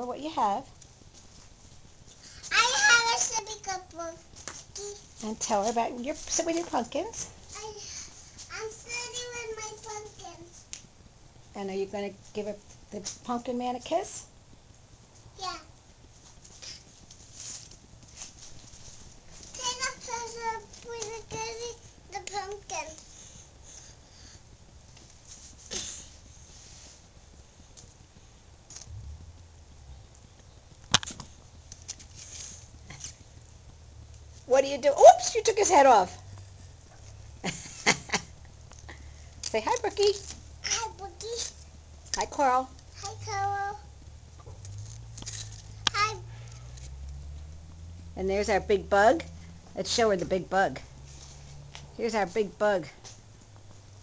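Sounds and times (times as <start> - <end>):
child saying hi: 2.5 - 4.2, 7.6 - 10.5, 15.4 - 15.7, 40.6 - 41.4, 43.0 - 43.8, 45.9 - 46.4
steady low rumble: 27.2 - 34.5, 41.8 - 52.6.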